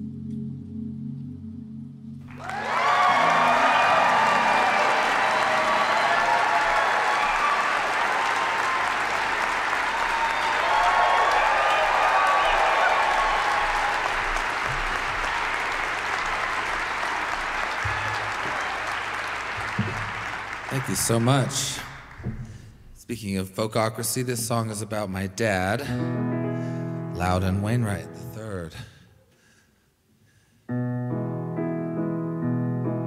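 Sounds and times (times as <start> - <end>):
audience applauding: 2.2 - 22.7.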